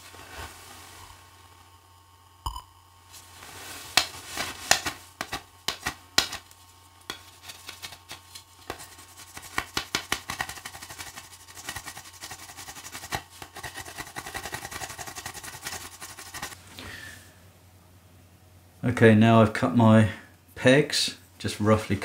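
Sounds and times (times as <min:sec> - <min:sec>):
knife whittling wood: 0:04.0 - 0:16.6.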